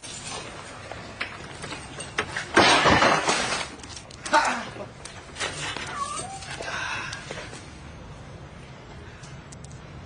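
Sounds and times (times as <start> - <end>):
cat meowing: 5.8 - 6.6.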